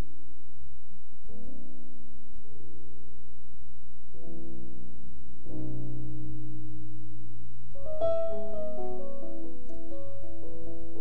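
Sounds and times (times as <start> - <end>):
church keyboard chords: 4.1 - 11.0.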